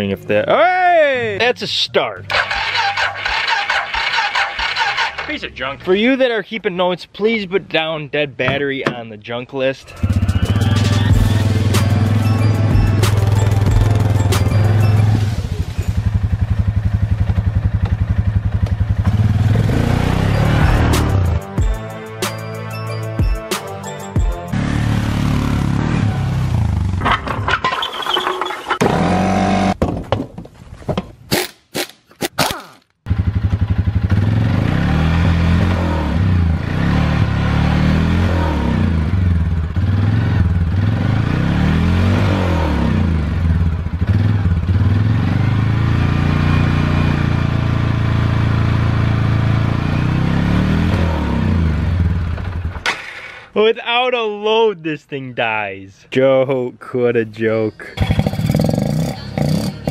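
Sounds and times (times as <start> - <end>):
engine revving with no load: 2.3 - 5.6, 9.8 - 17.0, 18.9 - 21.4, 24.5 - 27.0, 28.8 - 29.8, 33.1 - 52.4, 58.0 - 59.9
music: 9.9 - 15.4, 20.2 - 24.6.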